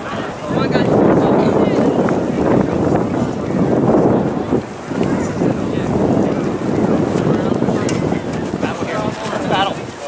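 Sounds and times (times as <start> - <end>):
faint shouting voices: 0.0 - 10.0
wind buffeting microphone: 0.0 - 10.0.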